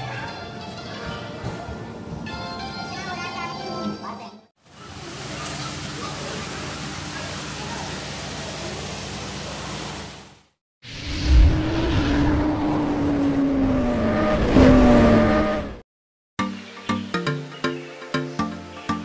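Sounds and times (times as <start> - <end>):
motorcycle engine revving: 11.1 - 15.8.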